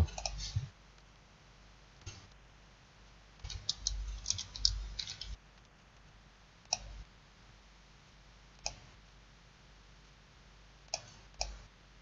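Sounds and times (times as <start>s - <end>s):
computer mouse clicks: 3.4s - 5.7s, 6.7s - 7.0s, 8.6s - 8.9s, 10.9s - 11.6s.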